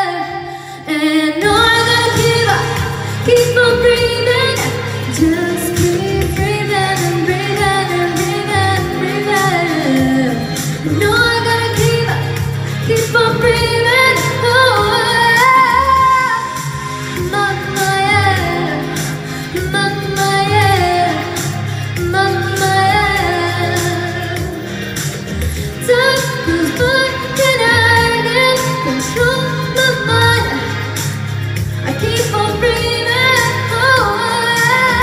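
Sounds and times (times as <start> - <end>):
backing track with bass and beat: 0.0 - 35.0
woman singing pop song: 0.0 - 35.0.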